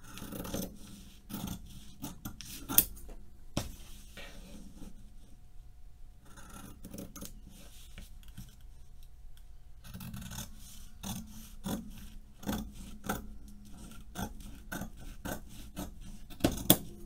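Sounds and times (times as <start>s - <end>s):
scissors snipping fabric: 12.4s - 16.9s.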